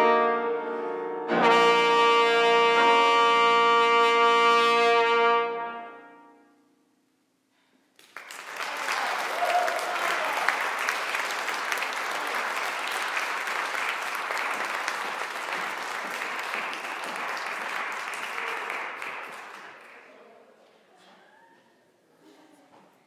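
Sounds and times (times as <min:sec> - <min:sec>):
trumpet music: 0:00.0 - 0:06.8
audience applauding: 0:08.0 - 0:20.3.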